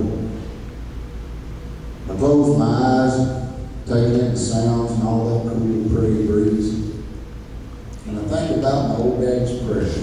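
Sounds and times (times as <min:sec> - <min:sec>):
hall background hum through speakers: 0:00.0 - 0:10.0.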